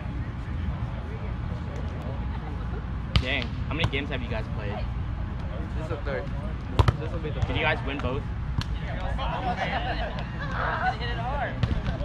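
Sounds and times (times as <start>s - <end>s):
volleyball being hit: 6.8s - 8.8s, 11.6s - 12.0s.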